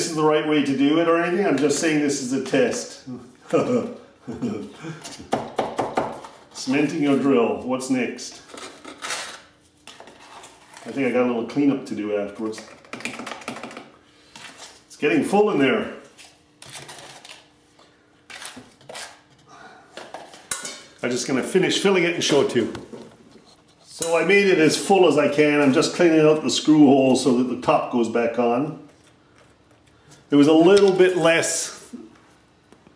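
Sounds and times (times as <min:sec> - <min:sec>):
man chuckling: 0:03.1 - 0:05.2.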